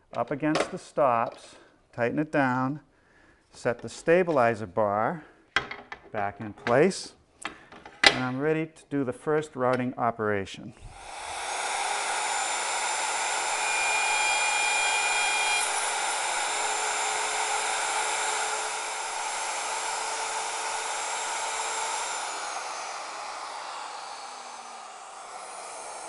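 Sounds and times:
router whining while cutting wood: 0:10.9 - 0:26.0.

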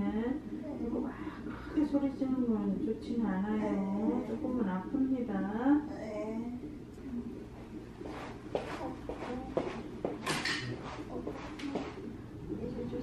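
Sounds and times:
faint low hum: 0:00.0 - 0:13.0.

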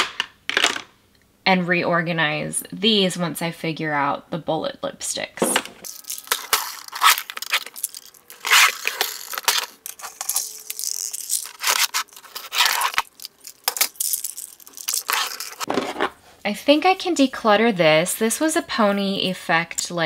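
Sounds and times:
plastic trays and tubes clattering: 0:00.0 - 0:01.0, 0:05.4 - 0:16.2.

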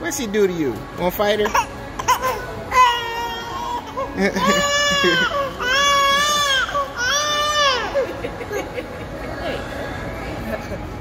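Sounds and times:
baby crying: 0:01.6 - 0:08.0.

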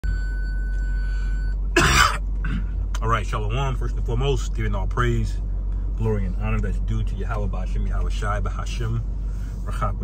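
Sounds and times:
car cabin hum: 0:00.0 - 0:10.0
man coughing: 0:01.7 - 0:02.8.

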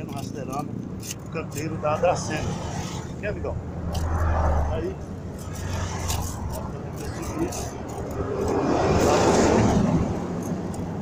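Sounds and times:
vehicle passing by: 0:01.6 - 0:11.0.

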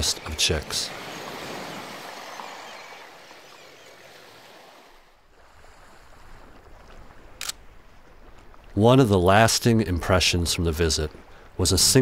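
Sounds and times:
surf: 0:00.0 - 0:12.0
wind: 0:00.0 - 0:12.0.

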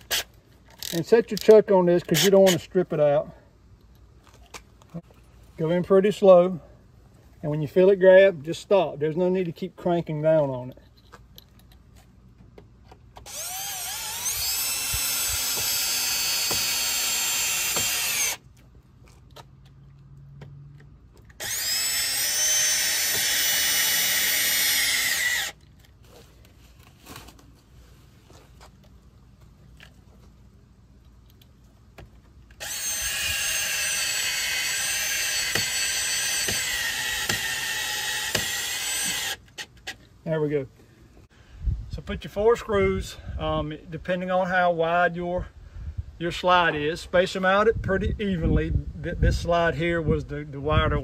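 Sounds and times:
cordless drill driving screws: 0:13.2 - 0:18.4, 0:21.3 - 0:25.6, 0:32.6 - 0:40.0.

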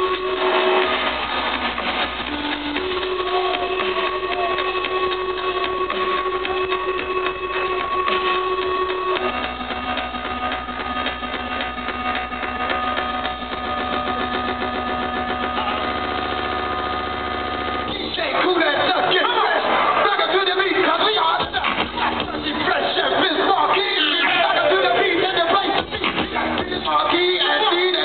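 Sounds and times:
buzzing synth chord: 0:00.0 - 0:19.1
steady bass: 0:00.0 - 0:28.0.

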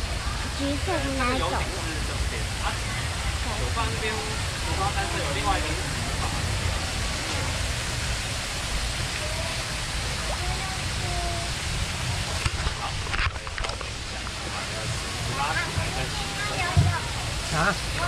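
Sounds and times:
boat engine rumble and hiss: 0:00.0 - 0:18.0.

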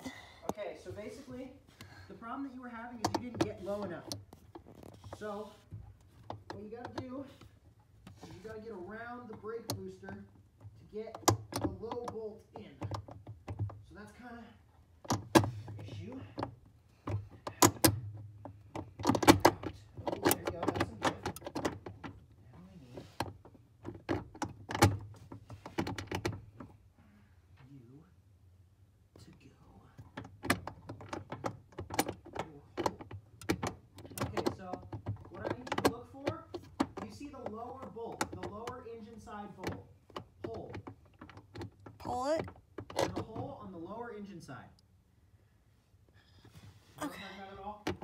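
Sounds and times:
metal parts clicking and knocking: 0:15.0 - 0:22.4, 0:30.0 - 0:43.6.

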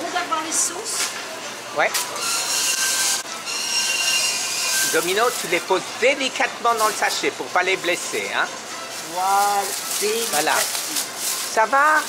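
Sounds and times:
plastic bag crinkling: 0:04.9 - 0:05.8, 0:08.9 - 0:12.0.

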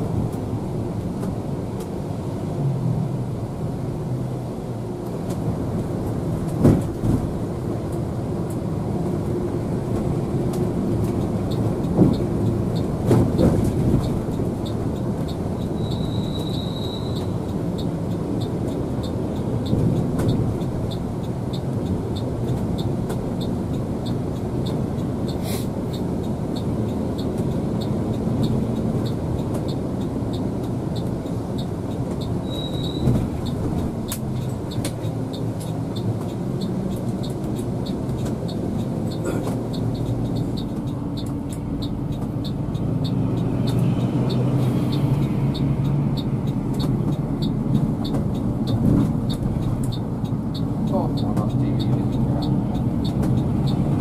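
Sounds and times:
bus engine and road rumble: 0:00.0 - 0:54.0
regular high ticking: 0:33.4 - 0:54.0.

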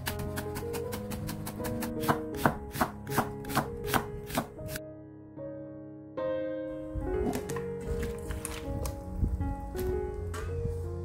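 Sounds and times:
knife slicing onion on board: 0:00.0 - 0:04.8.

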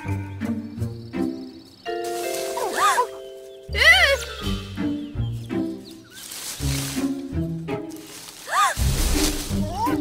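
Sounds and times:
orchestral cartoon music: 0:00.0 - 0:10.0.

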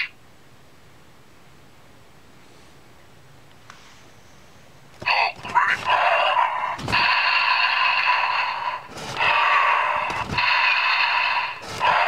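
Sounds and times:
toy growling roar: 0:05.4 - 0:06.8.

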